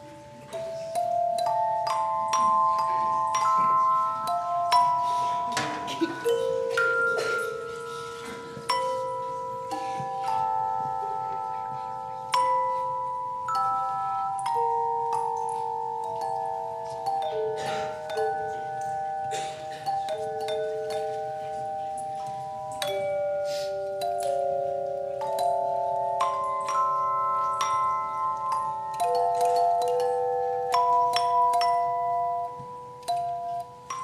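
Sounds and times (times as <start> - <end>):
hand bells playing melody: 0.0 - 34.0.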